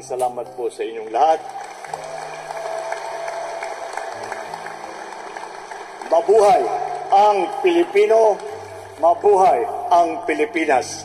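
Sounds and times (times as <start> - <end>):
audience applauding: 1.0 - 9.3.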